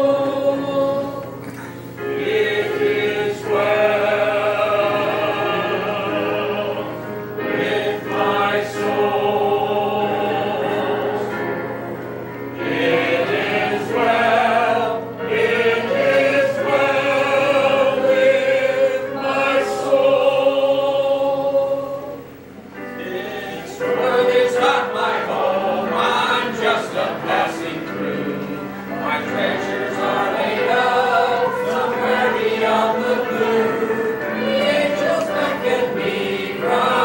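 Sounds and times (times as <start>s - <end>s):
music: 0.0s - 37.0s
people singing in unison: 0.0s - 37.0s.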